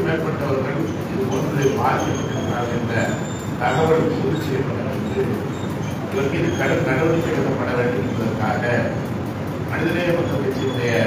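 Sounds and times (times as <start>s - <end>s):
man speaking in reverberant room: 0.0s - 11.0s.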